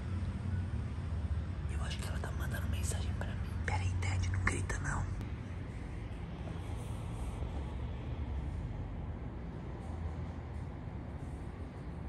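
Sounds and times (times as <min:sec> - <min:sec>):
steady low hum: 0:00.0 - 0:12.0
man whispering: 0:01.7 - 0:05.2.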